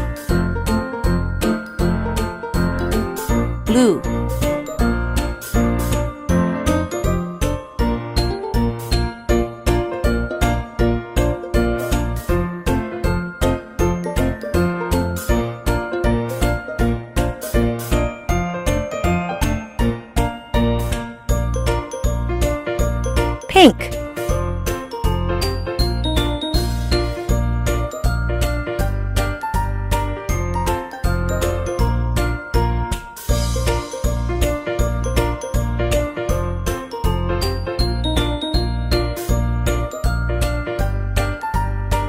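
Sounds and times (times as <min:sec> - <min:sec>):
cheerful children's music: 0:21.5 - 0:23.9, 0:24.7 - 0:42.0.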